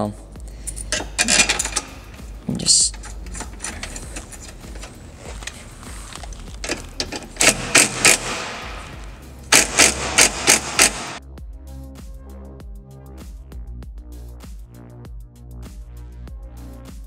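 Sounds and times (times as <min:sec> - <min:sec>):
electronic music: 0:00.0 - 0:17.0
impact driver hammering bursts: 0:06.7 - 0:11.2.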